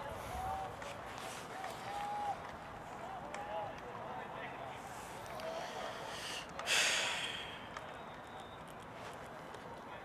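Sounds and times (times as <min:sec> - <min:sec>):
steady outdoor hiss: 0:00.0 - 0:10.0
hissing breath close to microphone: 0:05.4 - 0:07.7.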